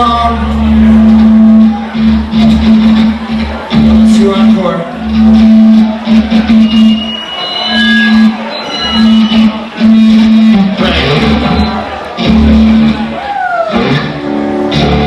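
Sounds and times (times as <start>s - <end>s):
loud electric guitars and bass: 0.0s - 15.0s.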